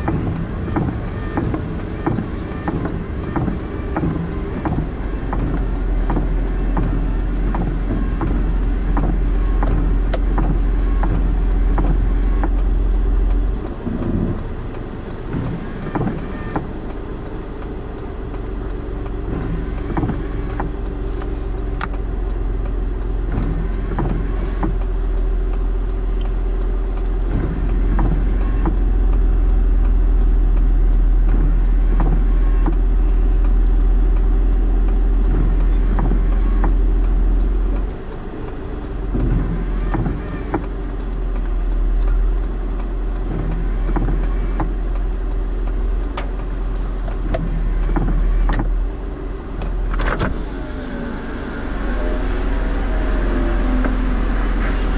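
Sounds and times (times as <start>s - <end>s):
car engine idling: 0.0s - 54.9s.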